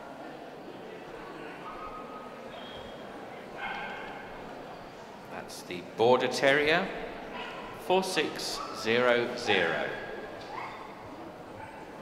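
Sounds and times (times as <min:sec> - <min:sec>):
background murmur: 0:00.0 - 0:12.0.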